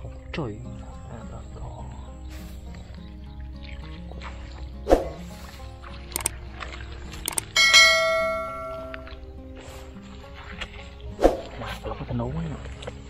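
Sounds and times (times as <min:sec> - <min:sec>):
background music: 0:00.0 - 0:13.0
sharp clicks: 0:06.1 - 0:06.4, 0:07.2 - 0:07.6
bell ding: 0:07.6 - 0:09.1.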